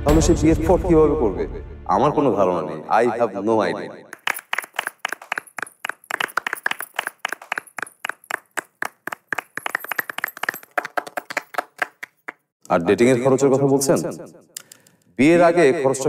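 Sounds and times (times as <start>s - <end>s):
small audience clapping: 4.1s - 12.5s.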